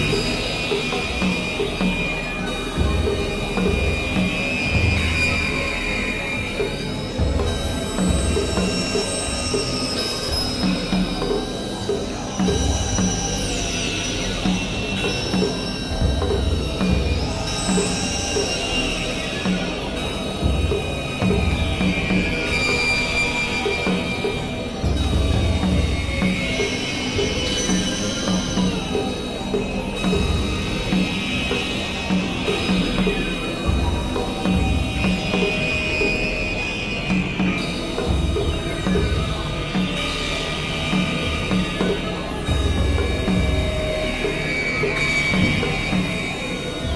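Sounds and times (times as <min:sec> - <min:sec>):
high synthesizer drones: 0:00.0 - 0:46.9.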